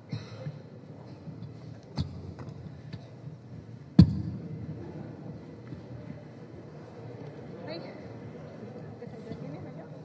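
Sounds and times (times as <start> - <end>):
murmur of people in a room: 0.0 - 10.0.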